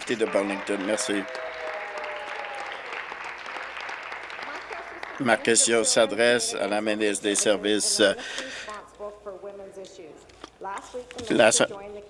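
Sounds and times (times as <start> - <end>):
many people clapping: 0.0 - 8.4.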